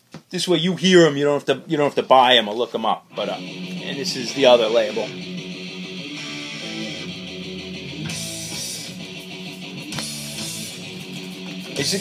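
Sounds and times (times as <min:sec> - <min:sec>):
heavy metal guitar riffs: 0:03.1 - 0:12.0.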